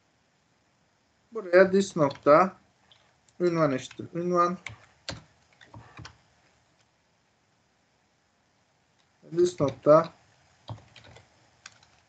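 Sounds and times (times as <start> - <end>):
computer keyboard keystrokes: 2.0 - 2.3, 4.6 - 6.2, 10.7 - 12.0.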